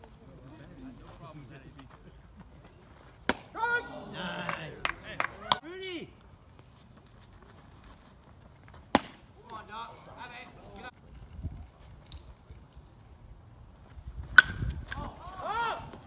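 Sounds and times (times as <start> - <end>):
baseball bat hitting ball: 3.2 - 3.6, 8.9 - 9.3, 14.3 - 15.1
players shouting: 3.3 - 6.2, 15.0 - 16.0.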